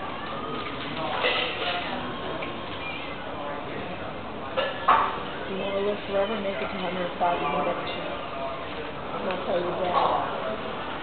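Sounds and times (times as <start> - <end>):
woman speaking into a microphone: 5.5 - 8.0.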